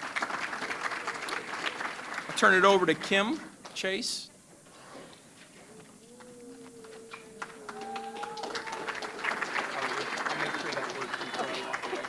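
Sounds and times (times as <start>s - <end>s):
audience applauding: 0.0s - 3.2s, 6.0s - 12.0s
voices: 5.6s - 12.0s.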